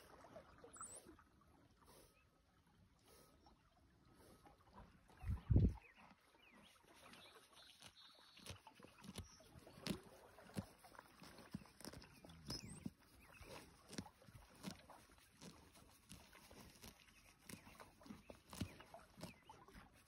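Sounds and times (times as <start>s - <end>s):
horse chewing grass: 4.1s - 20.0s.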